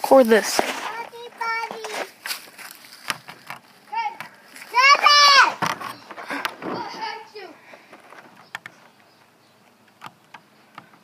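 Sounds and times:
child making wordless calls: 3.9 - 5.6.

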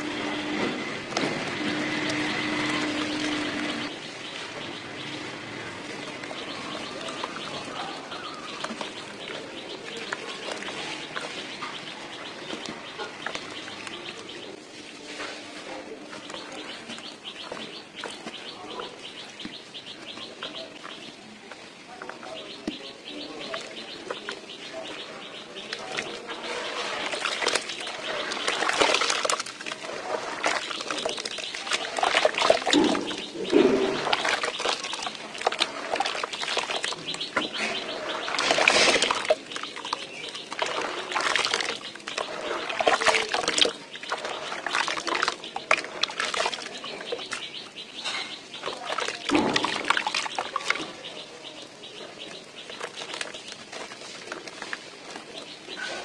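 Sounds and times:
water splashing: 1.0 - 56.0
hands sloshing slurry: 5.8 - 21.0, 22.0 - 56.0
cement crumbling into water: 27.0 - 47.6, 48.2 - 51.0.

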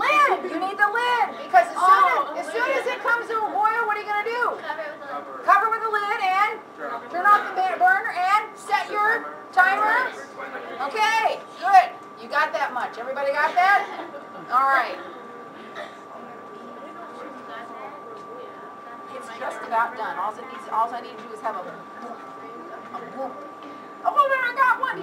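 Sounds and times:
woman talking: 0.0 - 10.2, 10.8 - 15.3, 16.2 - 25.0
students chattering: 0.0 - 12.4, 13.0 - 25.0.

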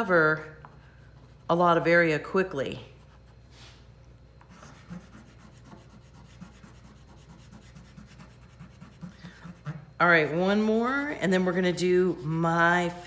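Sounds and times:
pastel stick rubbing on paper: 4.5 - 9.8, 11.6 - 13.0.

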